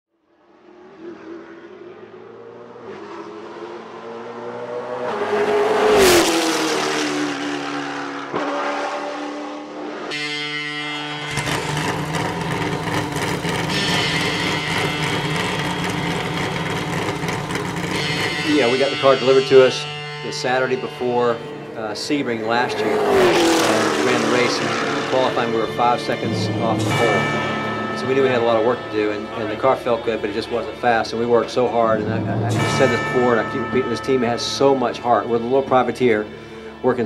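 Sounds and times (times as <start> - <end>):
race car engine passing: 0.3 - 37.0
music with sustained tones: 17.8 - 22.7, 24.4 - 37.0.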